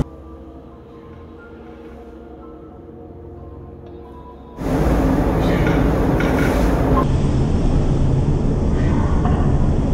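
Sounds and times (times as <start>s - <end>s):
loud low rumble: 4.6s - 9.9s.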